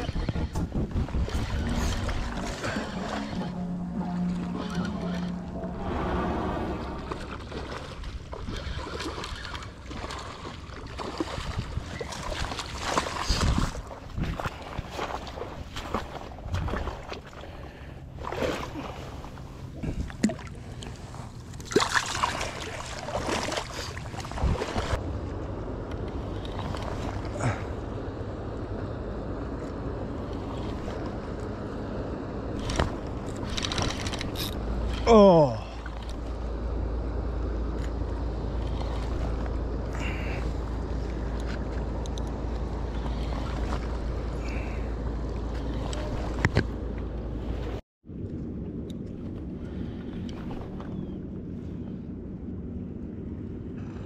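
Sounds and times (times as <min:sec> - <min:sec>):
loud falling tone: 0:00.0 - 0:07.5
wind rumble on microphone: 0:00.0 - 0:21.6, 0:23.0 - 0:35.0, 0:36.0 - 0:54.0
water lapping against rocks: 0:06.9 - 0:25.0.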